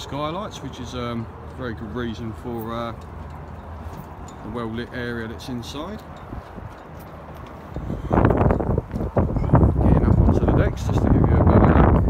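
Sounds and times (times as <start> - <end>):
wind rumble on microphone: 6.1 - 12.0.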